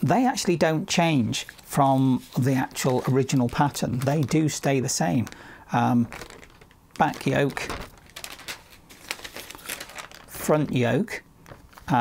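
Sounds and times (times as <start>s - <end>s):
paper rustling and crinkling: 1.3s - 12.0s.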